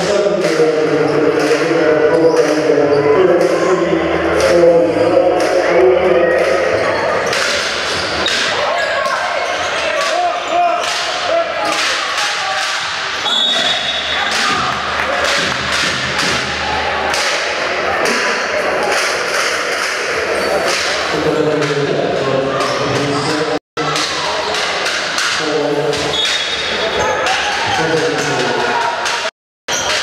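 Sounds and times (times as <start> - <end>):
players' voices: 0.0 - 30.0
spectators chattering: 0.0 - 30.0.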